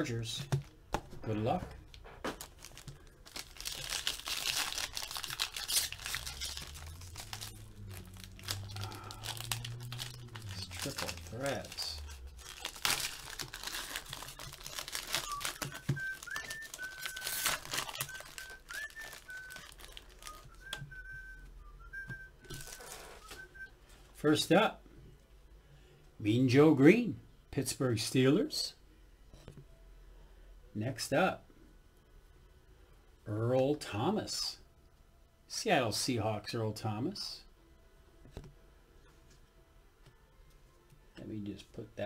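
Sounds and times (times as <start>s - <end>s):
foil wrapper crinkling and tearing: 2.4s - 20.8s, 22.4s - 23.4s
person whistling: 15.1s - 23.8s.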